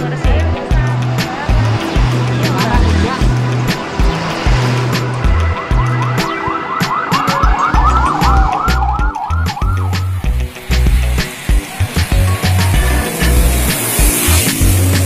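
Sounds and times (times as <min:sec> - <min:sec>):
background music with steady beat: 0:00.0 - 0:15.0
car siren yelping: 0:05.3 - 0:10.3.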